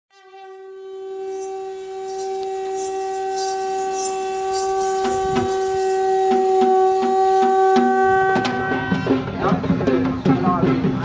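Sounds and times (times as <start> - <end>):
wind instrument steady note: 0.1 - 11.0
light high clashes: 1.2 - 7.5
drum beats: 2.5 - 11.0.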